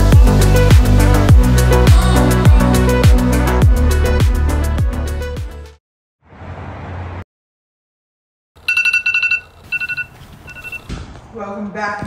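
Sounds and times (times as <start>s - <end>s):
smartphone ringing trill: 8.6s - 10.9s.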